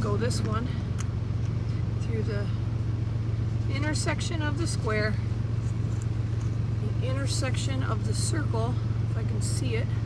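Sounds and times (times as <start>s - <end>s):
low-pitched background hum: 0.0s - 10.0s.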